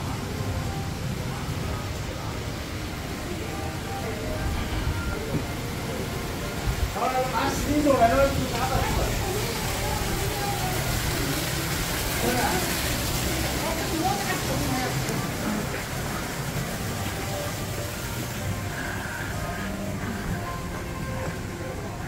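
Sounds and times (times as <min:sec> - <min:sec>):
people talking: 0:00.0 - 0:22.0.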